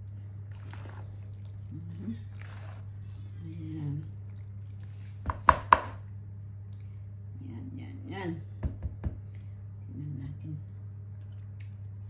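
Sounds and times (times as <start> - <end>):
spatula mixing salad in plastic bowl: 0.0 - 5.8.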